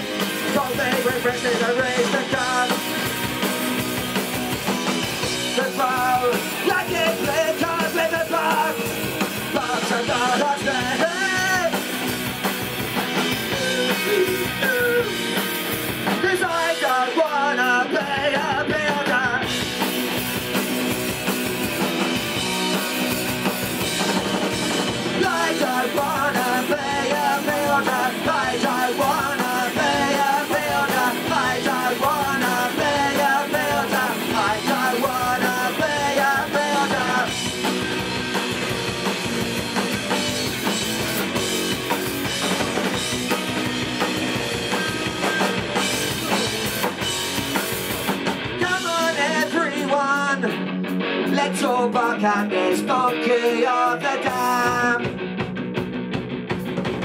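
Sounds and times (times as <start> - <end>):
bass guitar: 0.0 - 57.0
distorted electric guitars: 0.0 - 57.0
drums: 0.0 - 57.0.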